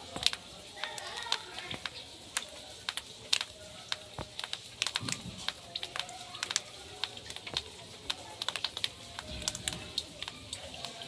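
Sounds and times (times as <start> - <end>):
hailstones striking wet ground: 0.0 - 11.0.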